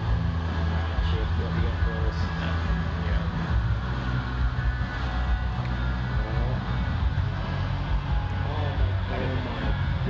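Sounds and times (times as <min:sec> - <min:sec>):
music over loudspeakers: 0:00.0 - 0:10.0.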